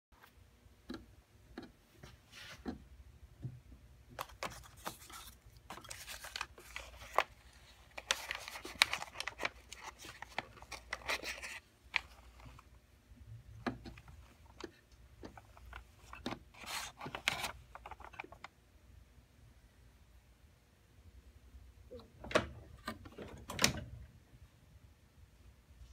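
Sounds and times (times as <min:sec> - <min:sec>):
paper crinkling and rustling: 0:04.2 - 0:12.7, 0:14.2 - 0:18.5.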